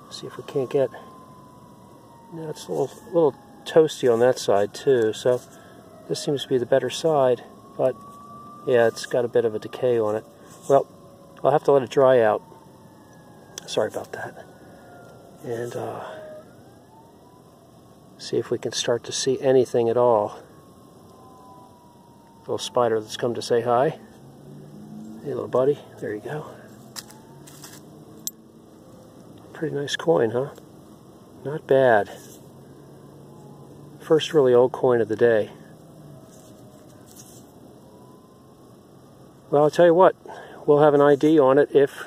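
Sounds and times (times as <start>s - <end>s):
distant siren wailing: 0.0s - 42.0s.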